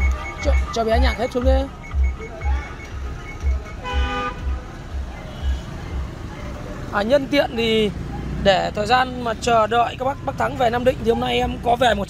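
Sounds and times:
background music with bass beat: 0:00.0 - 0:06.9.

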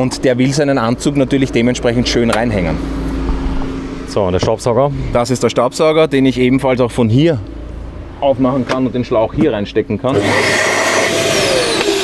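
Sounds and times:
vacuum cleaner suction rush: 0:10.1 - 0:12.0
vacuum motor whine: 0:10.1 - 0:12.0.

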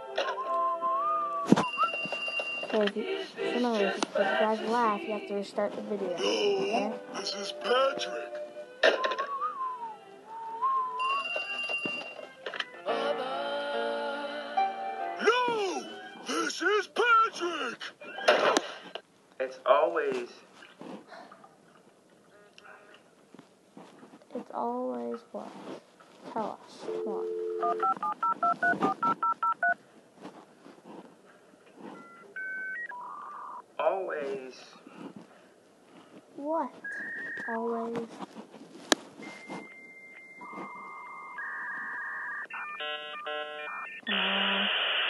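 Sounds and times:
steady phone tone: 0:11.0 - 0:12.2, 0:26.9 - 0:29.8, 0:31.9 - 0:33.7, 0:39.2 - 0:44.9
telephone keypad dialing tones: 0:27.0 - 0:29.8, 0:32.0 - 0:33.6, 0:39.6 - 0:44.1
cartoon telephone ringing: 0:39.7 - 0:44.1.

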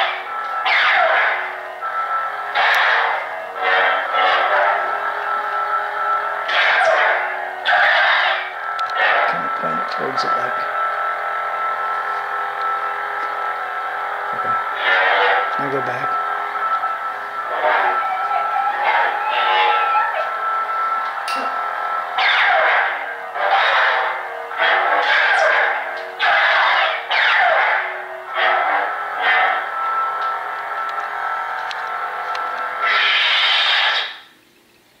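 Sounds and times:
lightsaber buzzing hum: 0:00.0 - 0:34.5.

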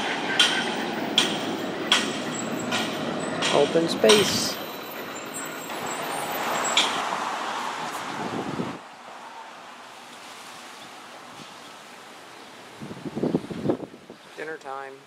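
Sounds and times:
vehicle passing by: 0:00.0 - 0:09.6
outdoor background noise: 0:00.0 - 0:15.0.

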